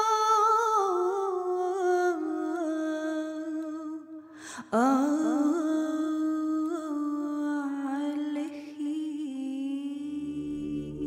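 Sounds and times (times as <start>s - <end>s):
woman singing a long note: 8.9s - 11.0s
low sustained accompaniment note: 10.1s - 11.0s.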